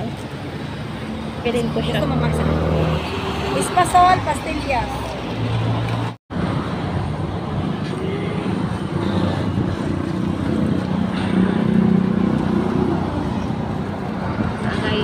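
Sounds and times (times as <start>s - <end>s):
road traffic noise: 0.0s - 15.0s.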